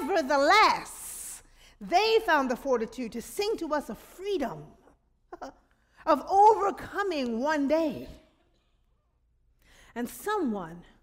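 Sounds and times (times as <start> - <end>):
woman speaking: 0.0 - 4.8, 5.4 - 8.2.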